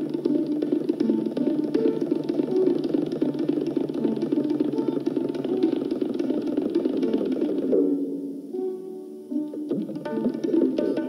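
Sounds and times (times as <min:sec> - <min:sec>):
tabla playing: 0:00.0 - 0:08.7, 0:09.4 - 0:11.0
sitar melody: 0:00.0 - 0:11.0.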